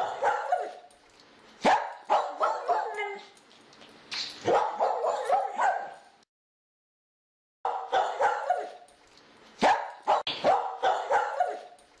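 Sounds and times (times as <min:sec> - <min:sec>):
dog barking: 0:00.0 - 0:00.9, 0:01.6 - 0:03.2, 0:04.4 - 0:06.1, 0:07.7 - 0:08.9, 0:09.6 - 0:11.8.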